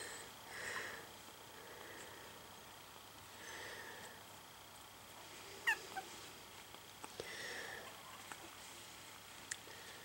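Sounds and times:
puppy squeaking: 0:05.6 - 0:06.1.

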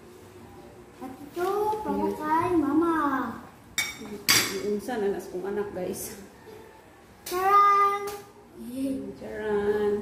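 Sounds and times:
cutlery clinking on plates: 0:03.8 - 0:04.7.

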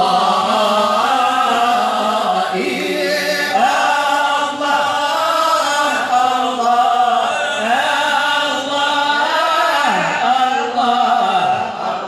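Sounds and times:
men chanting together: 0:00.0 - 0:12.0.

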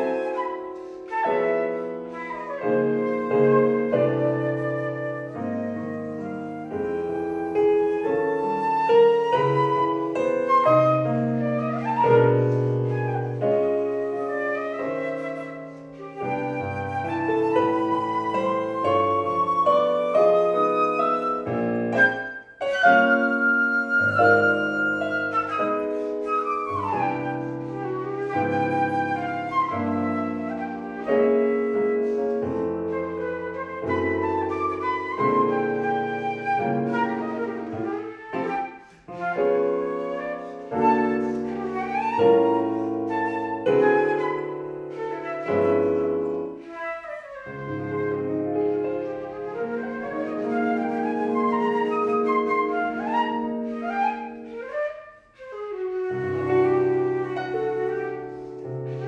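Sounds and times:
flute melody: 0:00.0 - 0:59.0
piano chords: 0:00.0 - 0:59.0.

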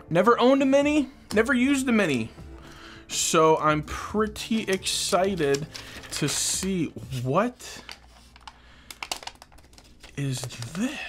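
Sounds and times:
paper wrap crackling: 0:04.4 - 0:11.0.

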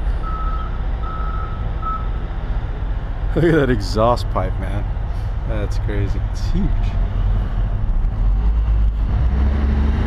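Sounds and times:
reversing alarm beeping: 0:00.2 - 0:02.2
low rumble: 0:04.5 - 0:10.0.

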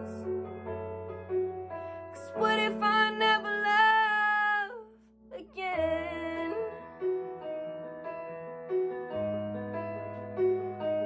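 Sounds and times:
piano accompaniment: 0:00.0 - 0:11.0.

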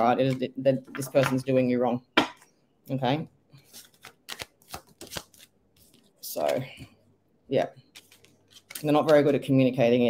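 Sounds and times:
cards being shuffled: 0:03.6 - 0:06.9, 0:07.8 - 0:09.5.

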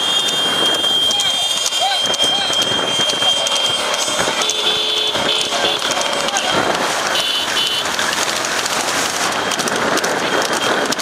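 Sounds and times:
high steady tone: 0:00.0 - 0:07.8
engine and wind rush: 0:00.0 - 0:11.0
men shouting: 0:01.0 - 0:07.0.

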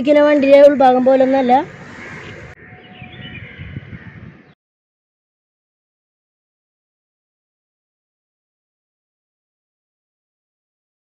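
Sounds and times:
faint outdoor ambience: 0:00.0 - 0:04.6.

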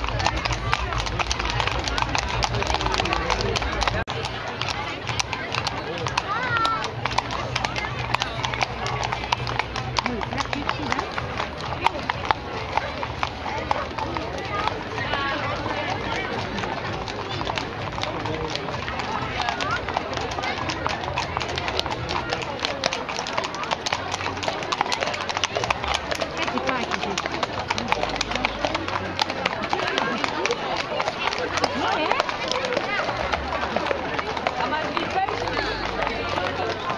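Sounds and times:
crowd chatter: 0:00.0 - 0:36.9
horse hooves clip-clopping on pavement: 0:00.0 - 0:36.9.

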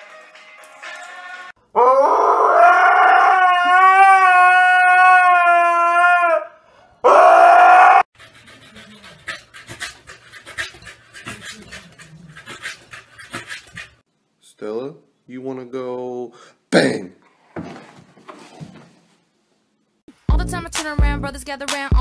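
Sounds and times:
dog howling: 0:01.8 - 0:08.1.

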